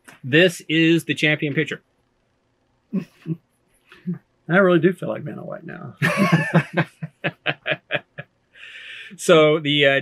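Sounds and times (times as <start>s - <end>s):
men laughing: 6.0s - 9.1s.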